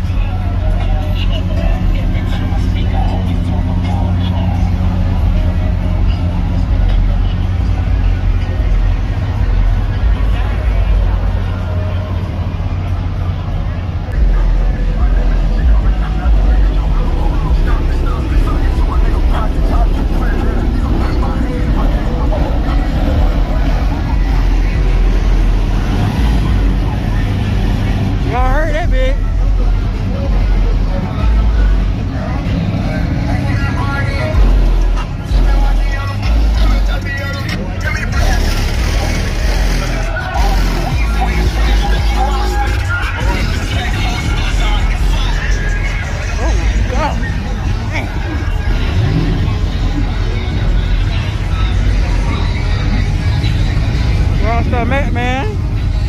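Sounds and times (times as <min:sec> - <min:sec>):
people talking: 0:00.0 - 0:55.9
bass-heavy background music: 0:00.0 - 0:56.0
car engines running: 0:00.0 - 0:56.0.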